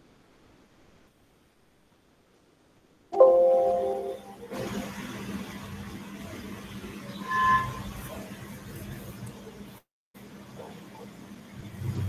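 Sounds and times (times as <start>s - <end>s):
ringing multi-pitch tone: 3.2s - 4.5s
short two-pitch tone: 3.2s - 4.5s.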